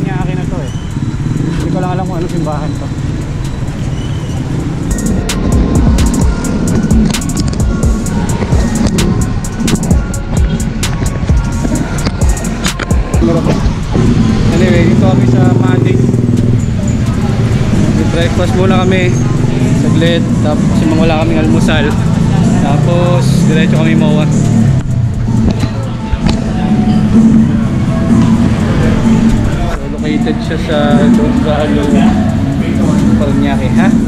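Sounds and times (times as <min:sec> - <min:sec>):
street traffic: 0:00.0 - 0:34.0.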